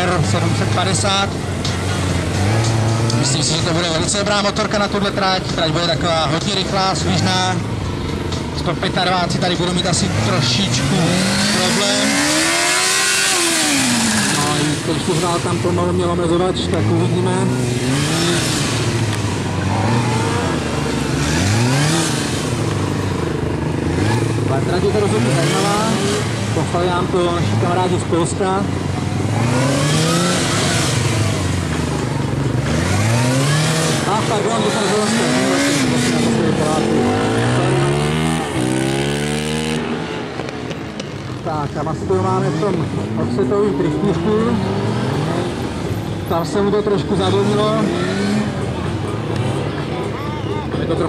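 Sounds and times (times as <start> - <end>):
motorcycle engine revving: 0.0 - 51.0.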